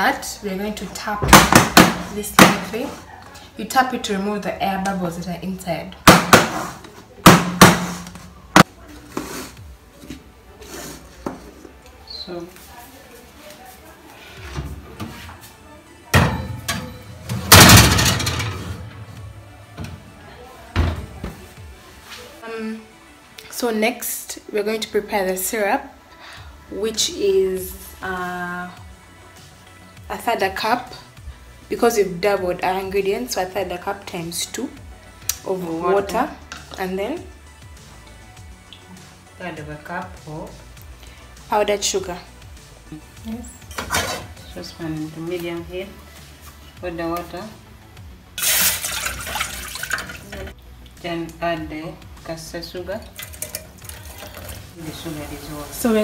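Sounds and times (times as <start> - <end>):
background music: 0.0 - 56.0
metal pan clattering on oven rack: 16.2 - 18.8.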